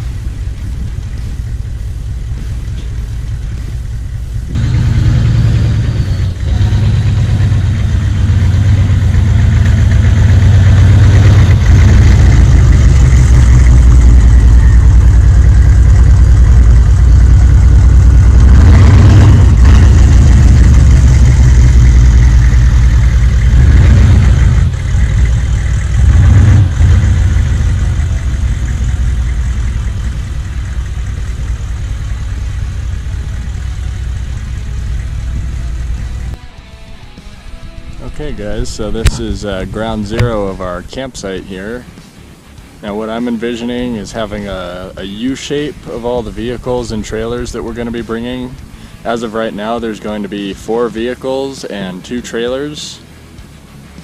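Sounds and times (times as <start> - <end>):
car engine revving: 0.0 - 36.4, 38.0 - 54.0.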